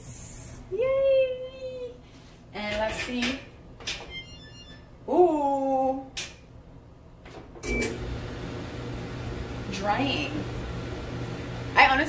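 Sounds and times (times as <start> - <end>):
dryer drum motor humming: 7.6 - 12.0.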